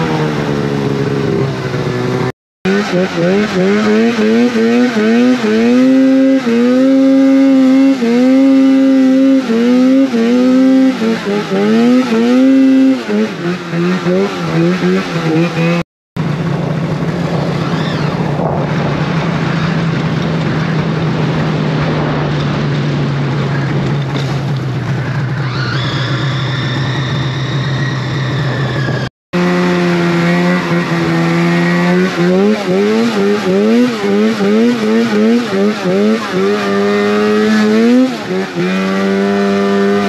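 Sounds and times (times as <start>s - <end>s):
snowmobile engine revving: 0.0s - 40.0s
wind noise: 16.4s - 25.2s, 28.1s - 29.1s.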